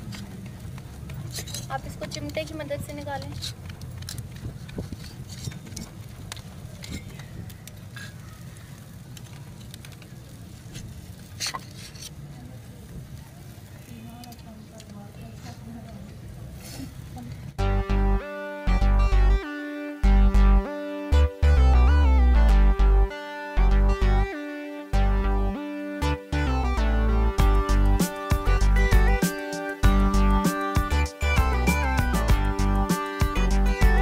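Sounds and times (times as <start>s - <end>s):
low outdoor rumble: 0.0s - 19.4s
guitar music: 17.6s - 34.0s.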